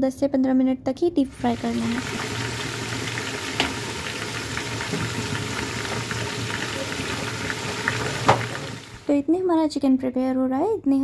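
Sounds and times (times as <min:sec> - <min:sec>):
chicken deep-frying in oil: 0:01.2 - 0:09.2
oil popping: 0:01.4 - 0:09.1.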